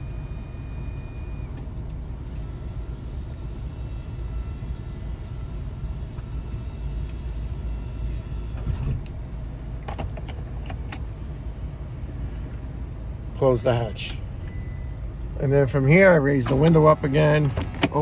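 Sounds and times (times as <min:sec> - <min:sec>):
van idling: 0:00.0 - 0:18.0.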